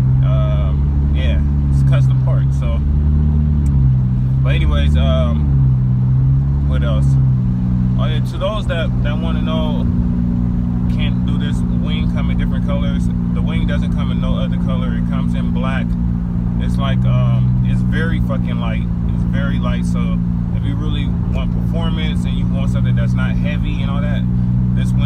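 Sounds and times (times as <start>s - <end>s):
car engine and road drone: 0.0s - 25.0s.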